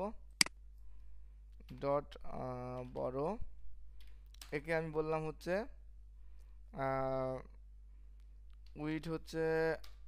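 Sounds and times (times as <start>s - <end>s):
man speaking: 1.7s - 3.5s, 6.7s - 7.6s, 8.8s - 10.0s.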